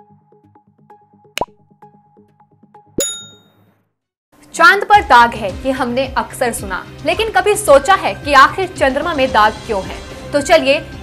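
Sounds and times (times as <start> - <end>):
pop sound effect: 1.4 - 1.6
bright ringing ding: 3.0 - 3.6.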